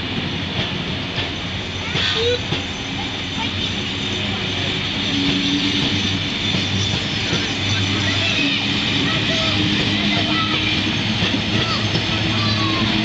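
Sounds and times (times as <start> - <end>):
people talking on platform: 0.0 - 13.0
train carriages rumbling past: 0.0 - 13.0.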